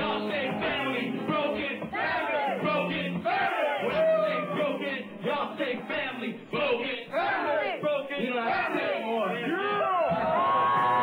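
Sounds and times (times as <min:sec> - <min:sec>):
crowd yelling: 0:01.8 - 0:05.1, 0:07.1 - 0:11.0
rapper shouting on microphone: 0:07.4 - 0:10.4.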